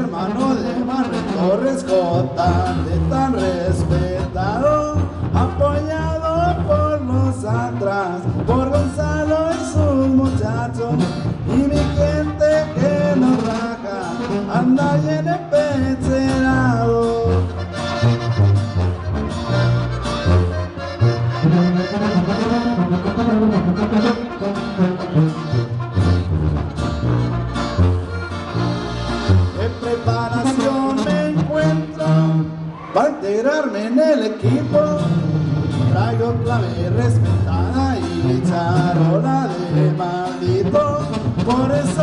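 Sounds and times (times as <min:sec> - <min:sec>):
brass playing melody: 0:00.0 - 0:32.7, 0:34.4 - 0:42.0
accordion: 0:00.0 - 0:32.8, 0:33.5 - 0:42.0
tuba bass line: 0:00.0 - 0:32.8, 0:33.9 - 0:42.0
acoustic guitar: 0:00.0 - 0:42.0.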